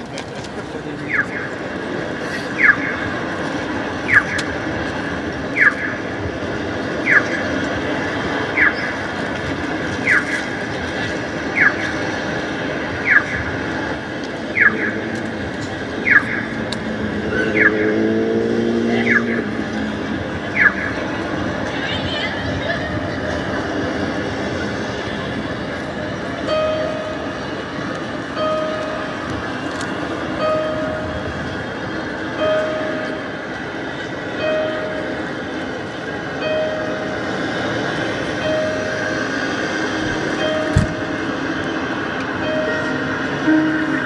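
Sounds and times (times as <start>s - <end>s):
city background hum: 0.0s - 44.0s.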